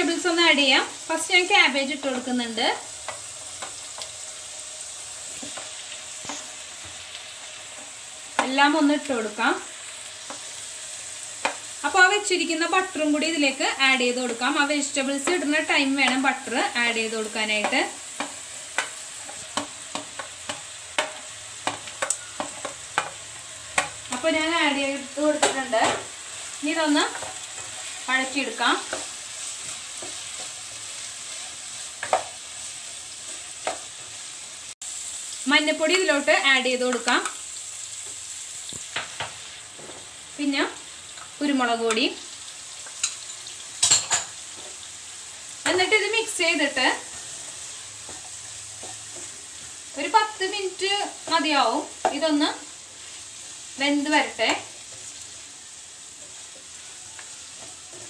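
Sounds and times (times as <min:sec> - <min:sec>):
butter sizzling in a pan: 0:00.0 - 0:58.0.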